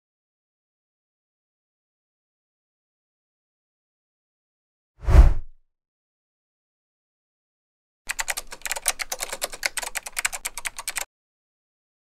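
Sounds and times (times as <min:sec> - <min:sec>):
rapid typing on keyboard: 0:08.1 - 0:11.1.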